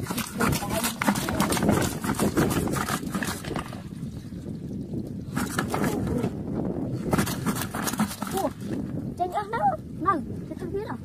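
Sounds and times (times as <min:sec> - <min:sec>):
fish trap rattling against metal basin: 0:00.0 - 0:03.8, 0:07.1 - 0:08.5.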